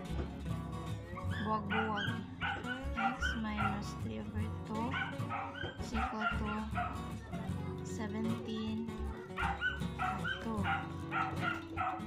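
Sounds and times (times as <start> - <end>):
music playing: 0.0 - 12.0
dog whimpering and yipping: 1.1 - 3.8, 4.9 - 7.0, 9.1 - 12.0.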